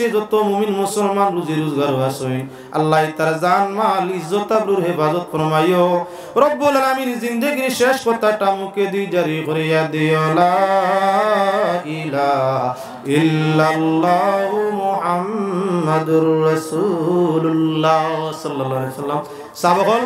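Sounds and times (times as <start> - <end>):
man chanting melodically: 0.0 - 20.0.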